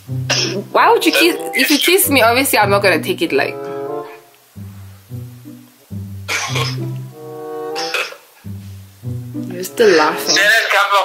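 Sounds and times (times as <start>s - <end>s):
background music with bass line: 0.0s - 10.5s.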